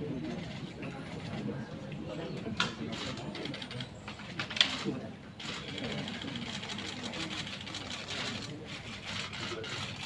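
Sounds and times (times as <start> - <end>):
people talking indistinctly: 0.0 - 10.0.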